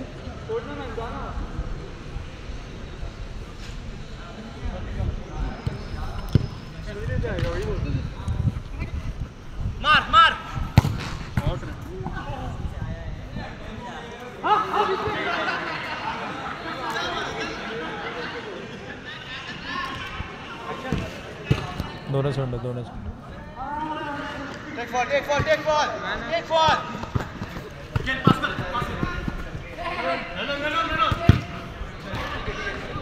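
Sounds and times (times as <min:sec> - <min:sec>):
football kicks on turf: 0:10.8 - 0:11.6.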